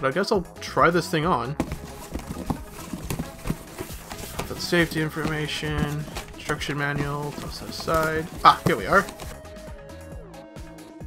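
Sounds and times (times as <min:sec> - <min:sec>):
items clattering in cardboard box: 0:01.6 - 0:09.4.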